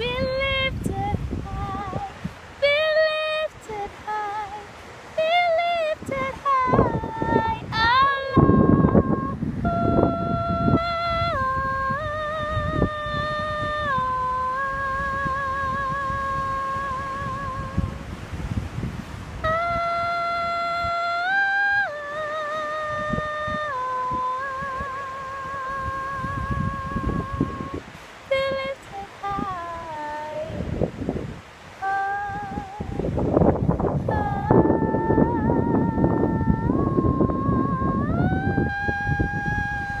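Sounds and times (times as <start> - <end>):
wind rumbling on microphone: 0.0 - 40.0
woman humming a held note: 5.4 - 18.0, 19.4 - 30.7, 34.0 - 40.0.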